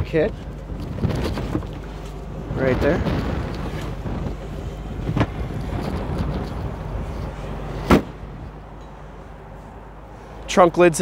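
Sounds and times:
car engine idling: 0.0s - 10.8s
trunk lid shutting: 2.9s - 8.4s.

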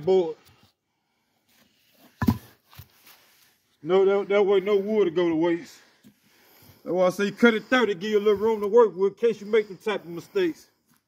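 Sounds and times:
wooden board thudding on grass: 2.2s - 2.6s.

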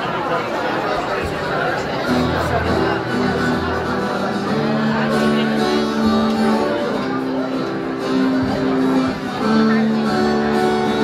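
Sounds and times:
strummed guitar chords: 1.8s - 11.0s
rock band playing: 2.1s - 11.0s.

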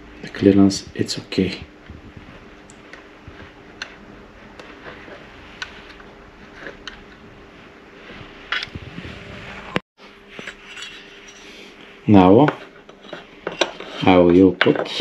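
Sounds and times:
steady low hum: 0.0s - 14.8s.

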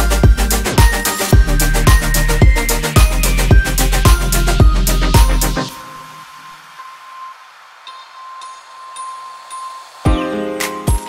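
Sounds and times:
bell-like synth notes: 0.0s - 11.0s.

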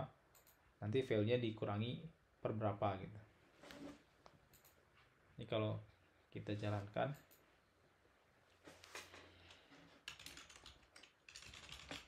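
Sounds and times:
typing on computer keyboard: 10.0s - 12.0s.

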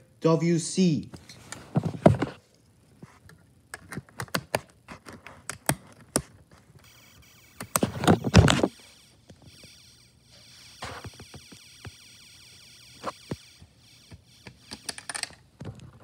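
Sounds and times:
shrill electronic alarm tone: 6.8s - 14.9s.

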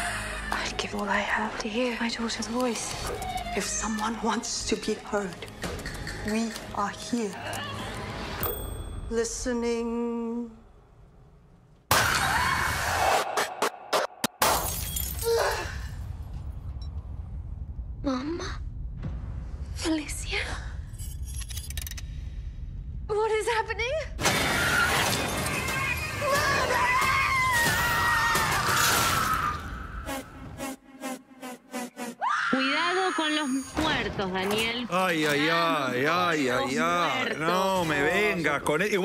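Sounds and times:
film trailer music: 0.0s - 11.9s, 15.8s - 24.3s, 26.1s - 39.0s
dramatic music: 28.2s - 34.9s
woman screaming: 32.2s - 33.7s.

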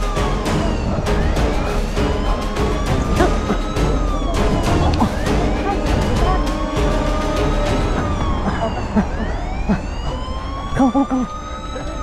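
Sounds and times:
background music with steady beat: 0.0s - 12.0s
police siren wailing: 0.0s - 12.0s.

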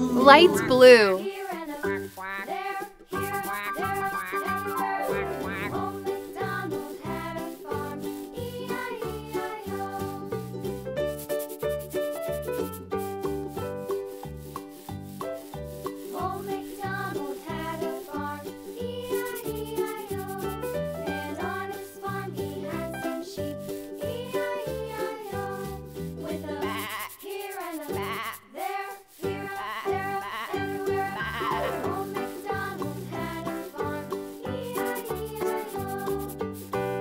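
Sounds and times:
children's instrumental tune: 0.0s - 27.1s, 27.9s - 37.0s
wavering bleat-like sound: 1.9s - 5.8s, 28.0s - 28.5s, 29.5s - 32.0s
marker rubbing over foam: 3.2s - 5.8s, 11.1s - 17.7s, 18.8s - 20.6s, 23.8s - 32.6s, 34.5s - 36.8s.

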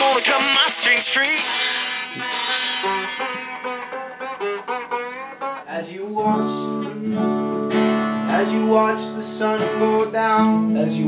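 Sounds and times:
sitar playing: 1.0s - 8.9s.

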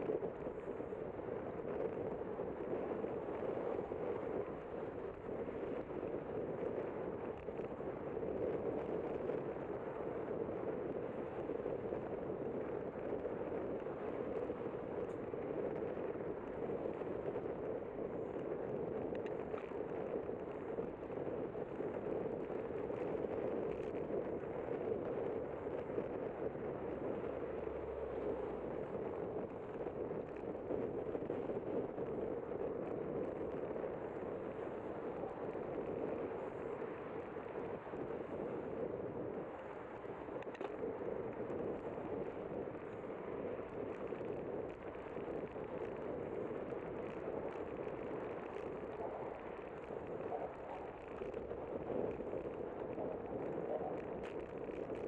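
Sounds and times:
bicycle road noise: 0.0s - 55.0s
rushing wind: 0.0s - 55.0s.

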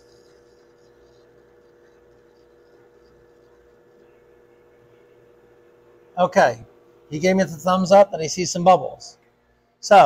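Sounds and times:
faint two-tone hum: 0.0s - 10.0s.

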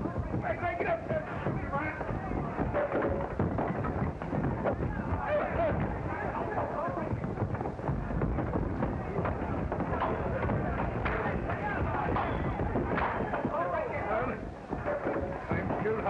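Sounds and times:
indistinct voices: 0.0s - 16.0s.

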